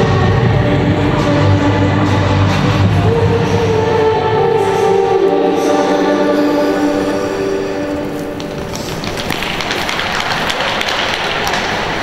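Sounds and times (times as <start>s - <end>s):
music with held notes: 0.0s - 9.0s
audience clapping: 8.4s - 12.0s.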